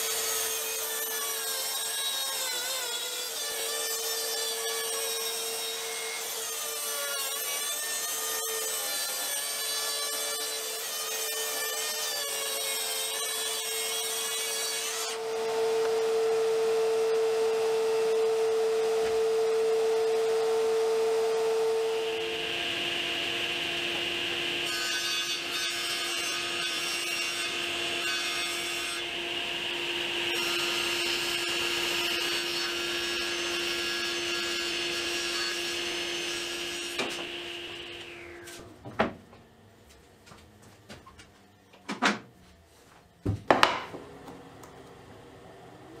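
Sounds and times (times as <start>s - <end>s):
table saw cutting wood: 0.0s - 38.7s
track saw cutting plywood: 0.0s - 38.7s.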